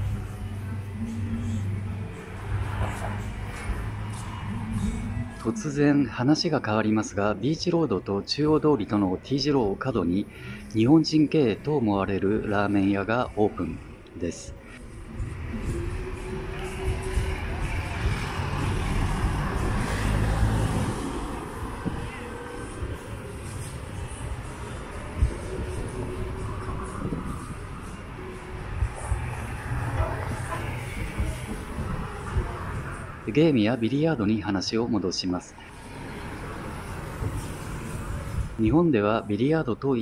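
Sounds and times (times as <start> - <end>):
vehicle engine passing: 0.0 - 5.9, 14.8 - 33.8
road traffic rumble: 0.0 - 40.0.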